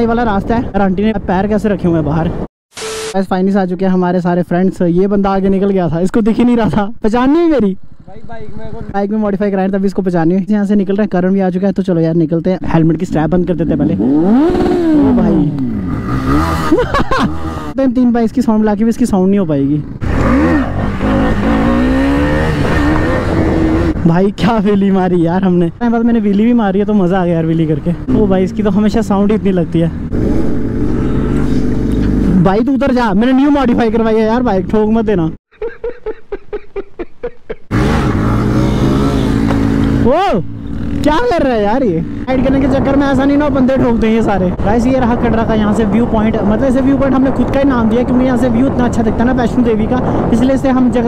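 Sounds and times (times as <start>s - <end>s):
motorcycle engine revving: 13.4s - 17.8s, 19.7s - 24.0s, 27.7s - 32.8s, 37.7s - 49.3s
wind rush on microphone: 42.1s - 51.0s.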